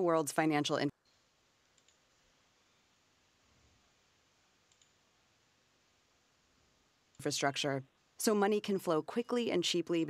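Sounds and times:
computer mouse clicks: 1.0s - 2.2s, 4.6s - 5.0s.

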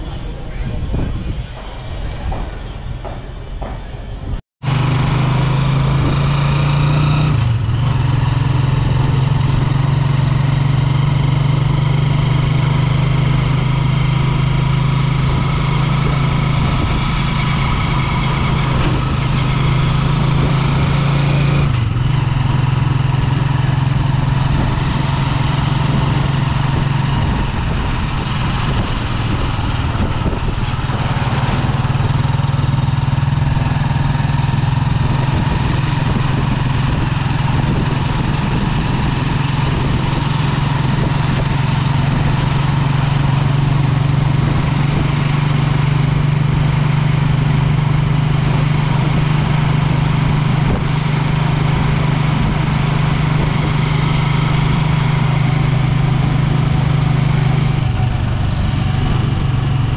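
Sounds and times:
road noise: 0.0s - 59.9s
vehicle engine humming: 0.0s - 59.9s.

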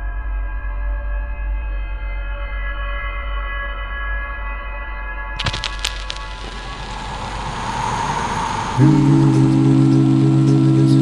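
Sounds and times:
rushing noise: 5.4s - 10.4s.

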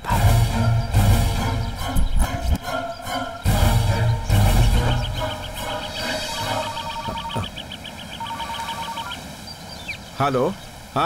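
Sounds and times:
phone ringtone beeping: 6.5s - 7.5s, 8.2s - 9.2s.

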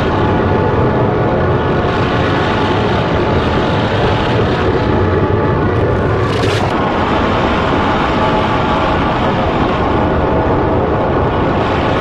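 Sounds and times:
distorted rumbling noise: 0.0s - 12.0s.

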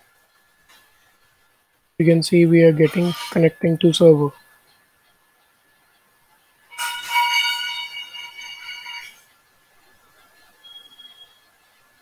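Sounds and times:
bright chime tone: 6.7s - 9.2s.

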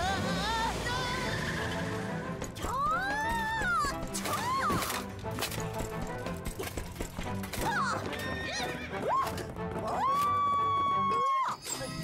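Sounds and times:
background music: 0.0s - 12.0s
hooves clip-clopping: 2.3s - 11.4s
cartoon horse whinnies: 7.6s - 12.0s.

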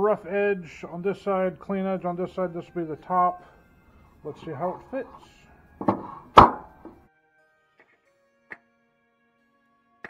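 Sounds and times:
wooden boards knocking: 5.8s - 7.0s.

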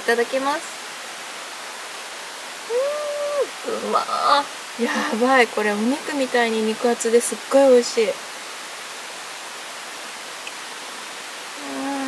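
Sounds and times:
background hiss: 0.0s - 12.0s
woman humming mmm: 2.7s - 3.8s, 11.6s - 12.0s
woman speaking: 3.6s - 8.2s.

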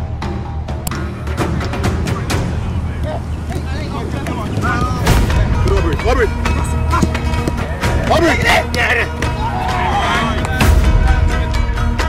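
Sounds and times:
faint voices: 1.8s - 11.5s.

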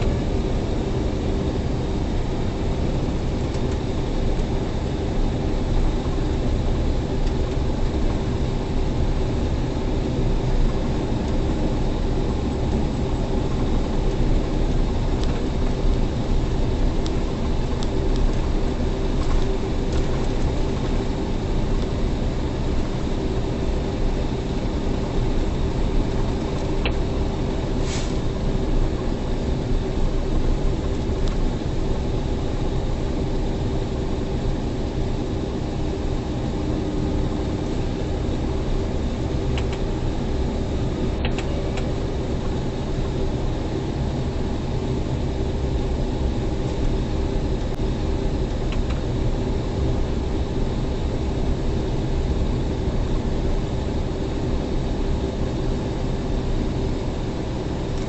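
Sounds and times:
diesel truck engine drone: 0.0s - 58.0s.

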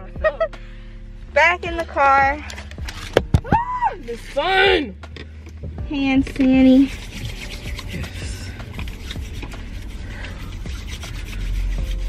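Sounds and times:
low rumble: 0.0s - 12.0s
hands rubbing together: 6.3s - 12.0s.

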